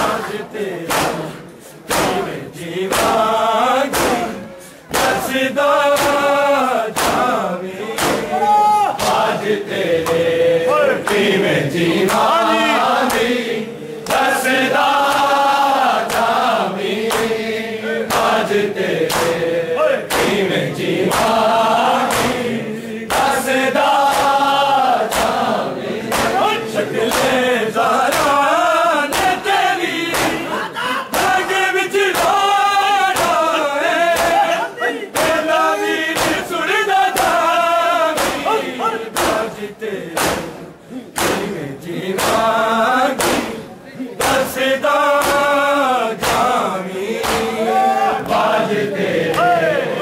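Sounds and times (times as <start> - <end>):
hands slapping chests: 0.0 - 10.3, 11.0 - 13.4, 14.0 - 17.4, 18.1 - 19.4, 20.1 - 28.5, 29.1 - 43.6, 44.2 - 47.6
men chanting in unison: 0.0 - 50.0.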